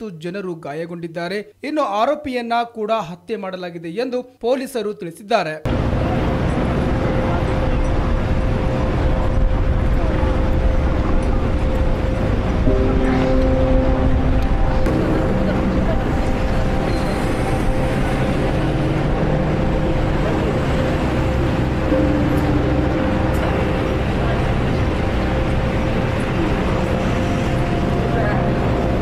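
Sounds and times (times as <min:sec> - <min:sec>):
held engine-like tones: 0:05.7 - 0:29.0
vehicles running: 0:05.7 - 0:29.0
indistinct voices: 0:09.7 - 0:29.0.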